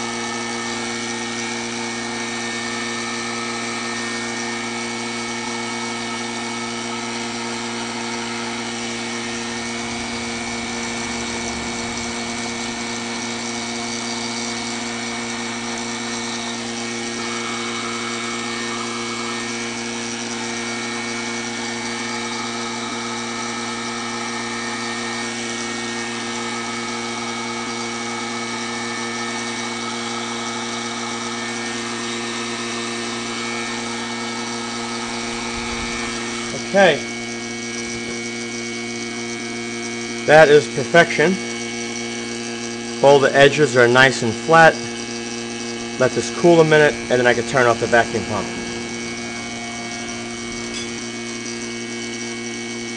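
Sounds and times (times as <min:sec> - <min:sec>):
vacuum pump humming: 0:00.0 - 0:52.9.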